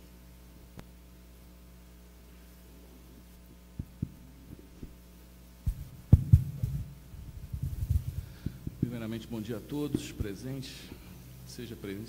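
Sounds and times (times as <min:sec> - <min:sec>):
faint steady hum: 0:00.0 - 0:12.0
microphone handling thumps: 0:03.8 - 0:05.0, 0:05.6 - 0:09.1.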